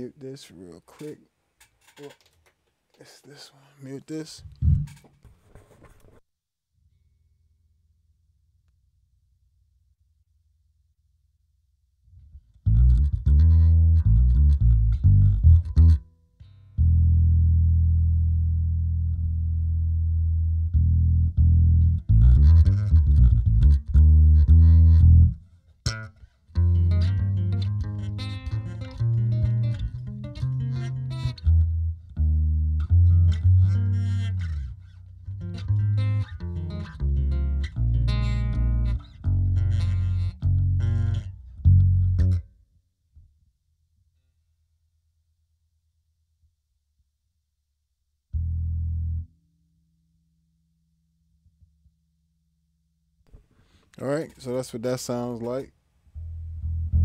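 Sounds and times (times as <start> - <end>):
electric bass guitar with effects: 4.4 - 5.1, 12.2 - 42.6, 48.3 - 49.7, 56.2 - 57.0.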